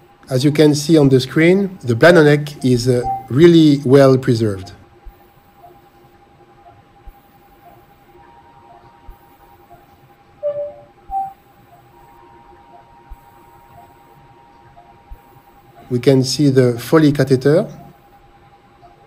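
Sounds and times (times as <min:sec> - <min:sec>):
steady electrical hum: 0:00.0 - 0:19.0
soft repeating beeps: 0:02.4 - 0:03.8, 0:04.6 - 0:16.0
louder short beeps: 0:03.0 - 0:03.4, 0:10.4 - 0:11.4.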